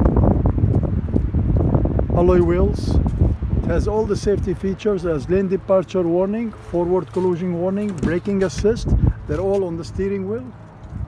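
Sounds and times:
wind blowing across microphone: 0:00.0 - 0:11.0.

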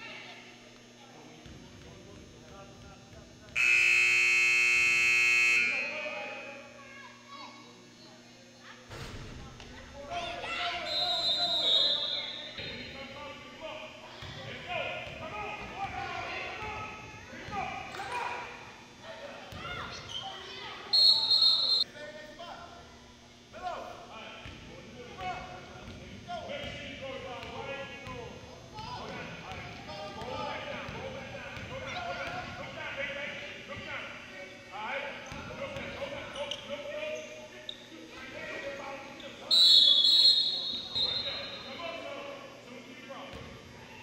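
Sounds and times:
voices in a gym: 0:00.0 - 0:44.0
referee's whistle blast: 0:03.6 - 0:06.0, 0:10.8 - 0:12.6, 0:20.9 - 0:21.8, 0:39.5 - 0:41.8
scoreboard buzzer blast: 0:03.6 - 0:06.2.

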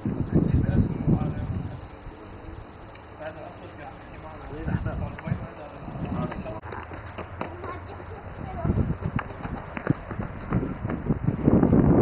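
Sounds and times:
steady low hum: 0:00.0 - 0:06.6.

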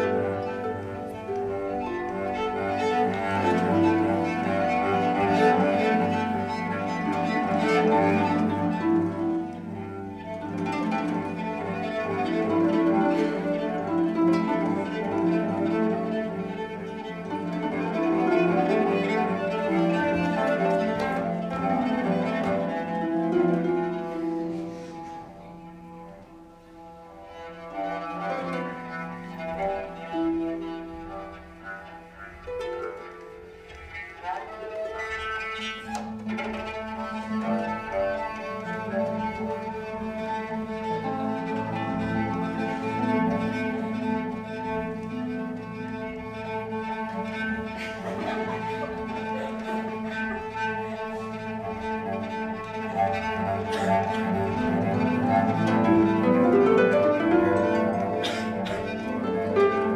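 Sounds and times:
bowed cello notes: 0:00.0 - 0:59.9
harp playing: 0:00.0 - 0:59.9.

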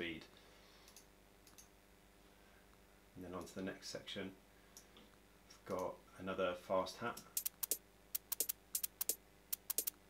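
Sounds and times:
fast hi-hat ticks: 0:07.2 - 0:10.0.

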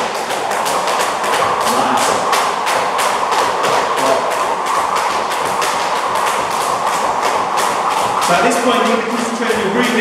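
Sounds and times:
jump ropes slapping floor mat: 0:00.0 - 0:10.0.

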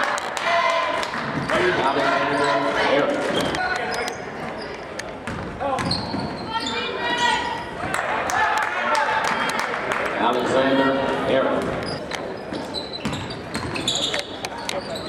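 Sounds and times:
basketball bouncing on hardwood: 0:05.2 - 0:06.4.

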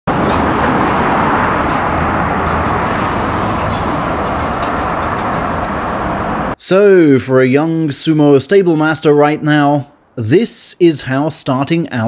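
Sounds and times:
steady road traffic: 0:00.0 - 0:06.7.

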